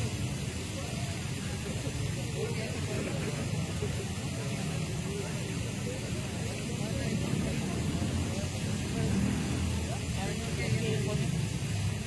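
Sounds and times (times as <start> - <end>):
distant people talking: 0.0 - 12.0
low city rumble: 0.0 - 12.0.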